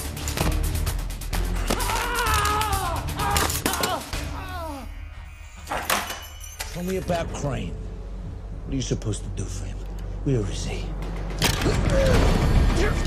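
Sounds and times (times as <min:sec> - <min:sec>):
action film score percussion: 0:10.0 - 0:13.0.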